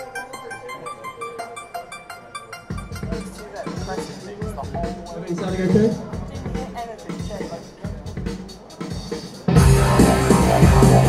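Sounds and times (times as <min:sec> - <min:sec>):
electric guitar picking single notes: 0:00.0 - 0:04.2.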